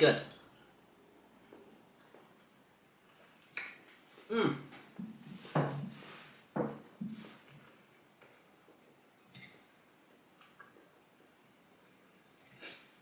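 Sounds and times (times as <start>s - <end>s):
lip smack: 3.4s - 3.8s.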